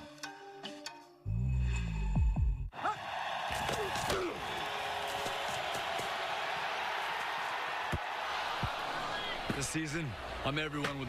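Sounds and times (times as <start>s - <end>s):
stadium crowd noise: 2.7s - 11.0s
shouts from crowd: 2.8s - 10.6s.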